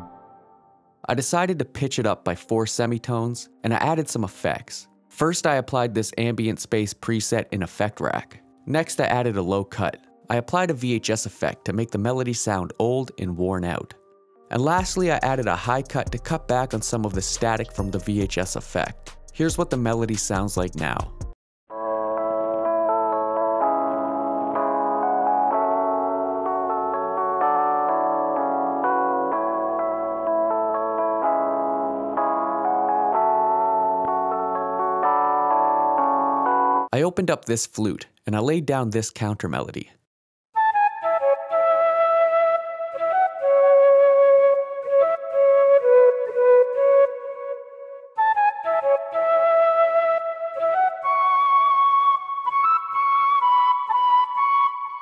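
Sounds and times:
synthesized flute melody: 0:00.0 - 0:01.0, 0:12.8 - 0:36.9, 0:40.6 - 0:55.0
electric piano chords: 0:21.8 - 0:36.9.

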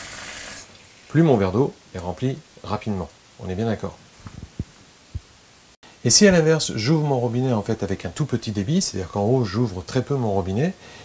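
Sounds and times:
soft low thumps: 0:04.2 - 0:05.4.

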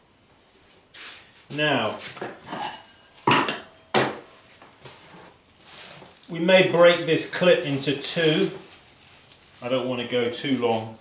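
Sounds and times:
objects knocking on workbench: 0:03.3 - 0:04.3
plastic sheeting rustling: 0:04.3 - 0:11.0.

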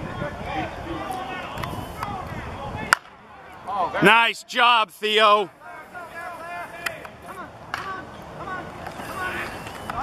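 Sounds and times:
bat hitting ball crack: 0:02.9 - 0:03.2.

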